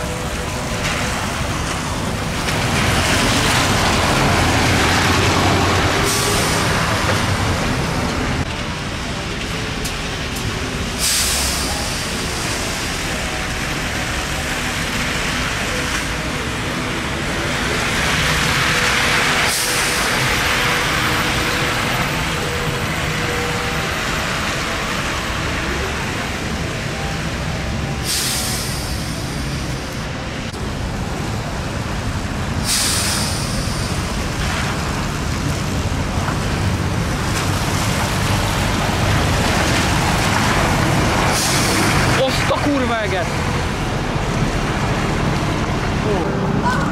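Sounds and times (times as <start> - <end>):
bus engine rumble: 0.0 - 46.9
air brakes hissing: 6.0 - 6.8, 10.9 - 12.8, 19.4 - 20.4, 28.0 - 29.8, 32.6 - 34.2, 41.3 - 42.0
tyre hiss on wet road: 10.8 - 14.4, 17.6 - 22.3, 28.0 - 29.8, 32.5 - 35.6.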